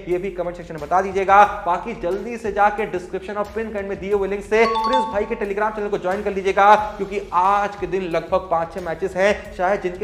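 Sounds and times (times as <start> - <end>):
two-note ding-dong chime: 4.6 - 5.6.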